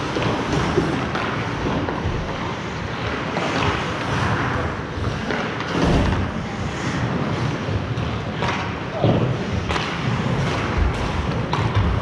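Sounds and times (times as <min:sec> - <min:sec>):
sharp knocks of sticks and puck: 0:08.4 - 0:12.0.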